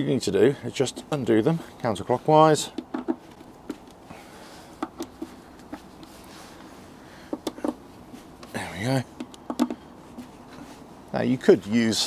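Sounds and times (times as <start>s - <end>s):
screwdriver clicks and taps: 9.2s - 9.8s.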